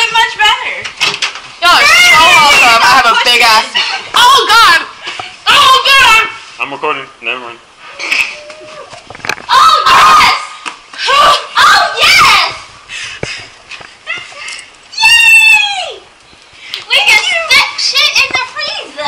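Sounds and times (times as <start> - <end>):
young women laughing and shrieking: 14.0 - 16.0.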